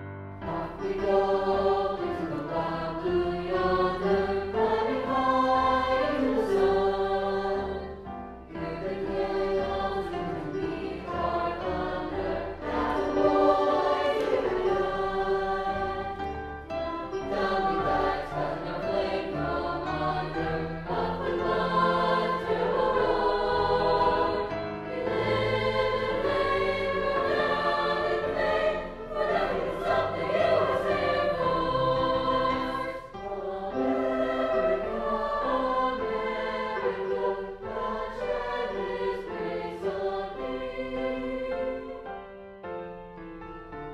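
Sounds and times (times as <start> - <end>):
choir singing: 0.0 - 42.6.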